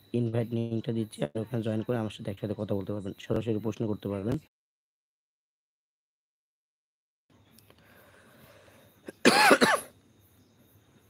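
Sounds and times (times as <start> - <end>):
man coughing: 9.1 - 9.9.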